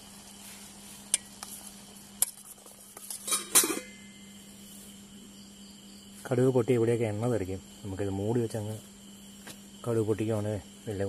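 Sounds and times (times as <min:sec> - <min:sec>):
faint steady hum: 0:00.0 - 0:11.0
pot lid and spoon clatter: 0:03.0 - 0:04.0
steel cookware clinking: 0:03.1 - 0:04.0.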